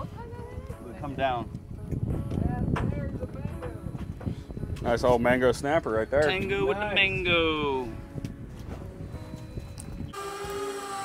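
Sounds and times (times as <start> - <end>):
soft background music: 0.0 - 10.2.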